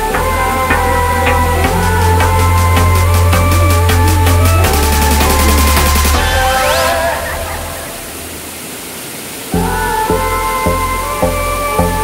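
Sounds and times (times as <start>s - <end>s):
music: 0.0s - 7.0s, 9.6s - 12.0s
water rushing down rocks: 0.1s - 10.7s.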